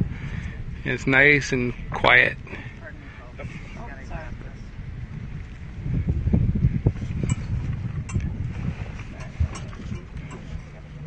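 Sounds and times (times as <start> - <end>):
outboard motor running: 0.0 - 11.0
wind buffeting microphone: 0.0 - 11.0.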